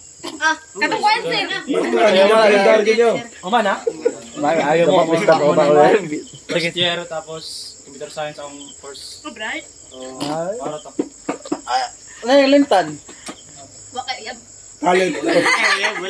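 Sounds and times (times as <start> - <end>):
crickets trilling: 0.0 - 16.0
people talking and calling out: 0.3 - 16.0.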